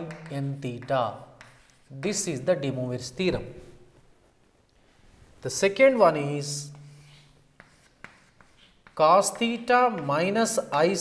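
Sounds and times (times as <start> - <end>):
chalk tapping on board: 0.0 - 2.8, 6.7 - 10.6
chalk scratching on chalkboard: 0.0 - 3.8, 6.2 - 11.0
person speaking: 0.0 - 3.9, 5.4 - 11.0.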